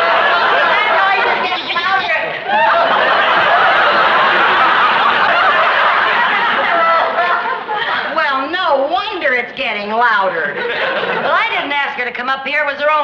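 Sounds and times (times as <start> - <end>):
studio audience laughing: 0.0 - 8.2, 10.3 - 11.8.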